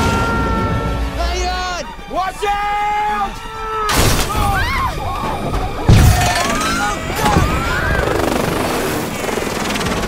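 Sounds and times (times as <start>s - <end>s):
orchestral music: 0.0s - 7.6s
people shouting: 0.0s - 8.1s
helicopter rotor and engine: 6.2s - 10.0s.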